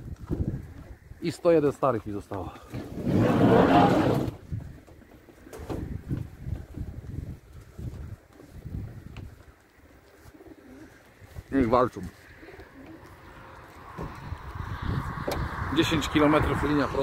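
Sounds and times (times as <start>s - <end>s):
loud rush of noise: 2.9s - 4.4s
pigeons cooing: 8.0s - 11.4s, 12.2s - 13.6s.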